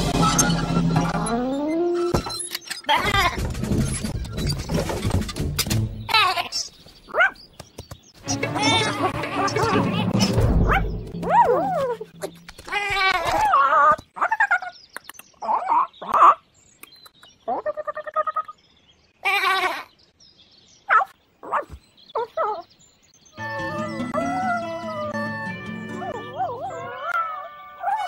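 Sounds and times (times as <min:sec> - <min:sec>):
cartoon animal bleats and squeaks: 0:02.8 - 0:03.4
low music: 0:08.2 - 0:12.4, 0:23.4 - 0:27.0.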